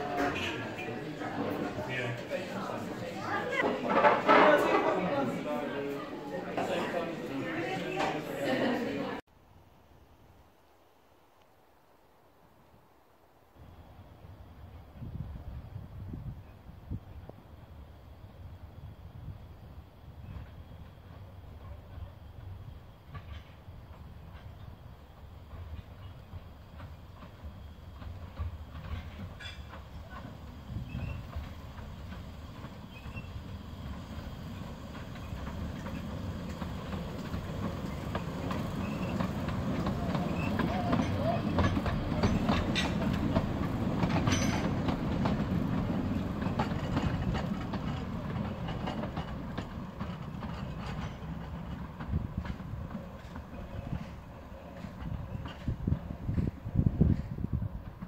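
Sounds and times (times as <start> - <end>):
steam train passing: 0.0 - 9.3, 13.4 - 58.0
wheels clicking over rail joints: 20.2 - 58.0
heavy carriage knocks: 28.0 - 57.5.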